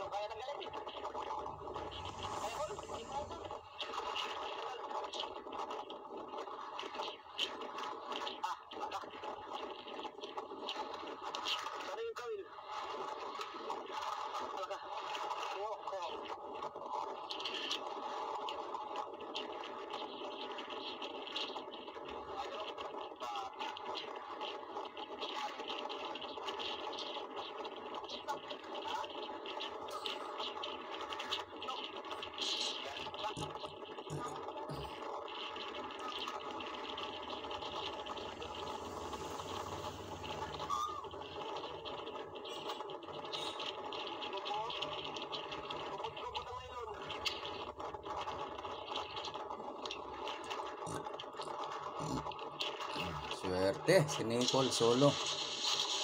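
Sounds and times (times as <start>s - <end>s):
indistinct voices: 0.0s - 4.8s, 32.1s - 43.7s, 45.9s - 47.7s, 50.4s - 55.2s
steady drone: 0.0s - 5.3s, 32.0s - 49.1s.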